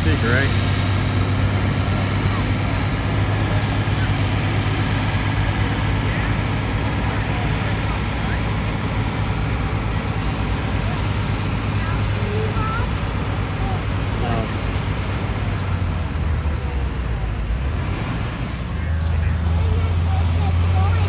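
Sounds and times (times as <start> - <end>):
tractor engine under load: 0.0 - 21.0.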